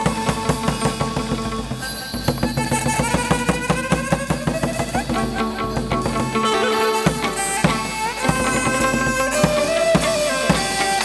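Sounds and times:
quick steady percussion beat: 0.0s - 11.0s
lute melody sliding upward: 4.6s - 11.0s.

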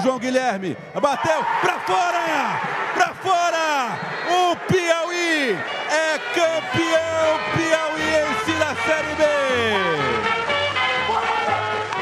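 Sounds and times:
man shouting excitedly: 1.0s - 10.2s.

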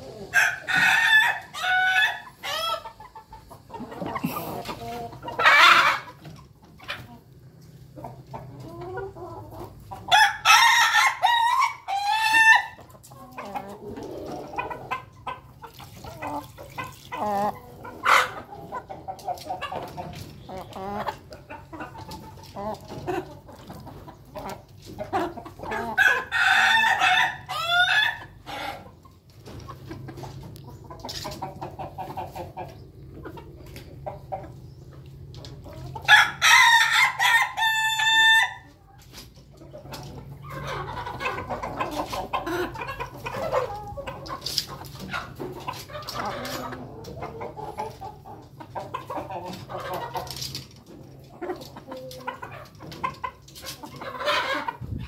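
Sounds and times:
hens clucking: 0.0s - 55.0s
roosters crowing: 0.2s - 2.8s, 10.1s - 12.8s, 26.0s - 28.8s, 36.0s - 38.7s.

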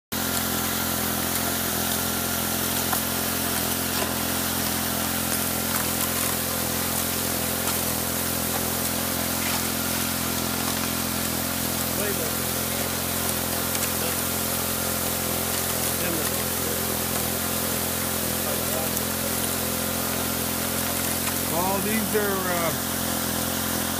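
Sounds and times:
small engine water pump running: 0.0s - 23.9s
water jetting and splashing: 0.2s - 23.9s.

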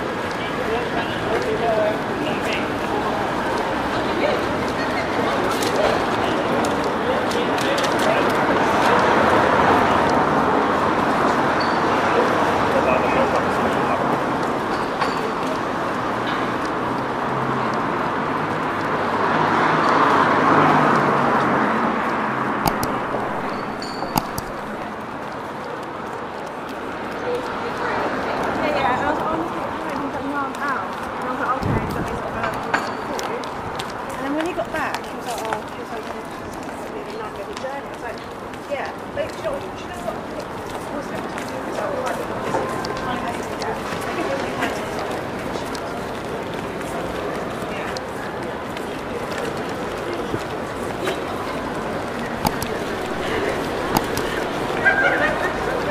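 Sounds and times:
crowd babble: 0.0s - 55.9s
sharp clicks: 22.6s - 24.8s, 52.4s - 54.7s.

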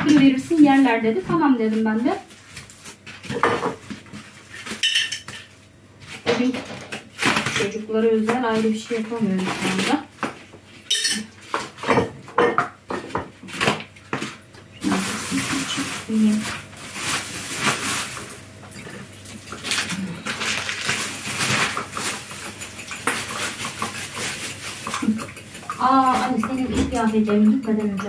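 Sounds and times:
plastic bag rustling: 0.0s - 10.2s, 13.5s - 27.4s.

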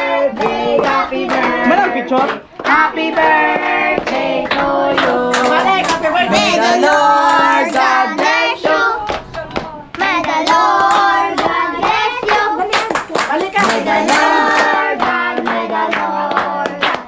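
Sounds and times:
group of voices singing: 0.0s - 17.0s
hands clapping: 0.0s - 17.0s.

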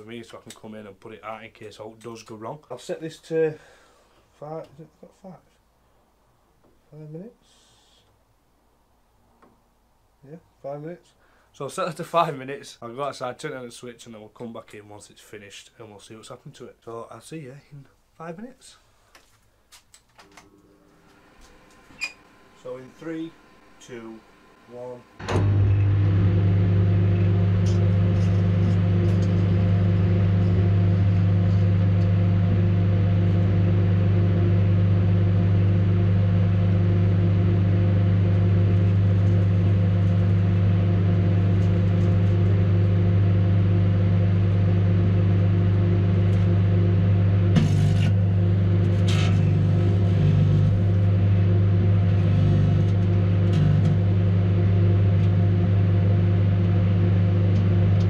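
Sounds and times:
microwave oven humming: 20.2s - 58.0s.

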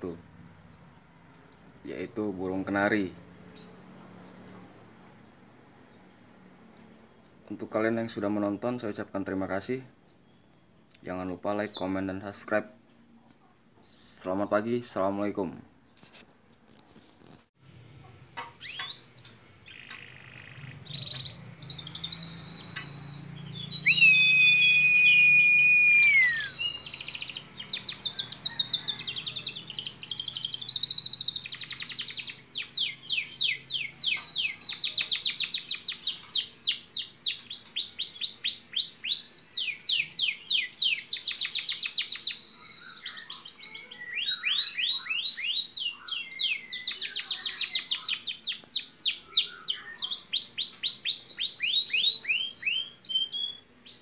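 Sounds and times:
canary singing trills: 0.0s - 16.2s, 17.2s - 54.0s.

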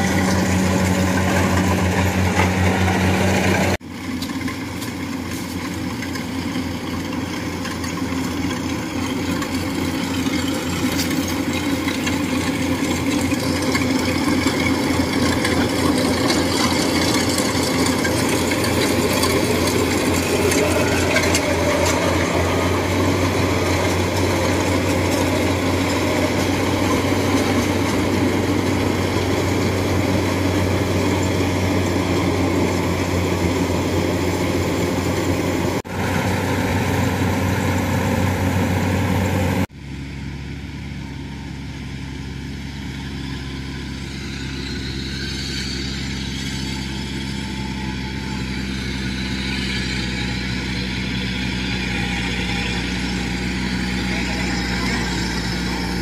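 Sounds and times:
combine harvester engine running: 0.0s - 56.0s.

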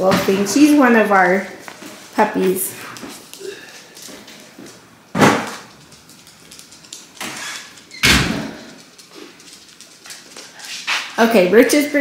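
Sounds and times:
door opening and shutting: 7.2s - 8.6s.

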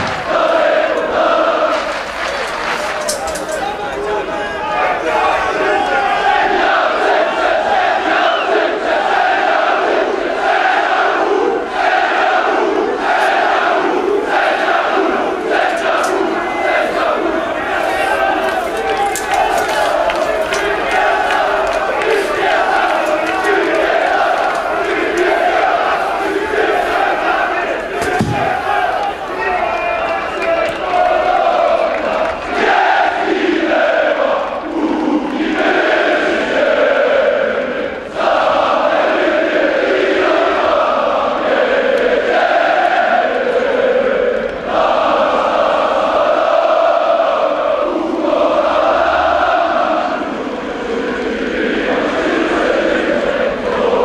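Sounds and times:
football crowd chanting: 0.0s - 54.0s.

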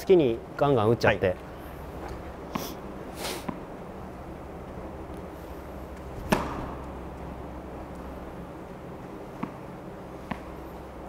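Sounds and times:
tennis racket hitting ball: 6.2s - 7.4s, 9.3s - 10.6s.

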